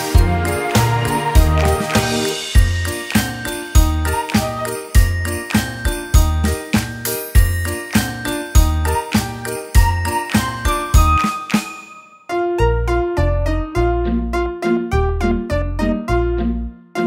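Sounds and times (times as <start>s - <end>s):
background music with steady beat: 0.0s - 12.2s
bell-like jingling notes: 0.0s - 12.4s.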